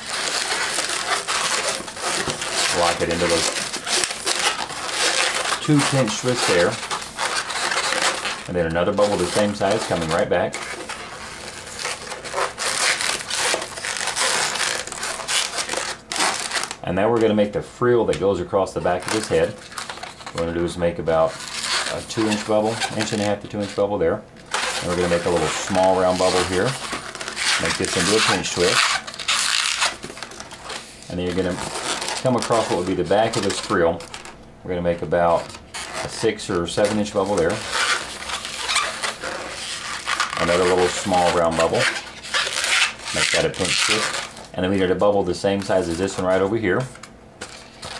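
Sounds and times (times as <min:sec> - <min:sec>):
balloon rubbing and squeaking: 0:00.0 - 0:47.0.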